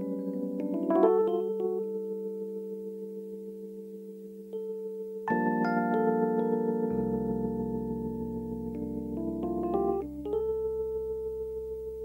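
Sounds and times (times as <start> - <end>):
sustained keyboard chord: 0.0 - 12.0.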